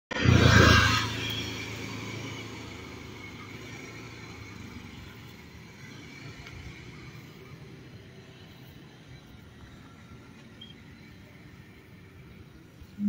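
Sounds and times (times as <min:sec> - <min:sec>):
low street hum: 0:00.1 - 0:13.0
motor vehicle engine: 0:00.1 - 0:13.0.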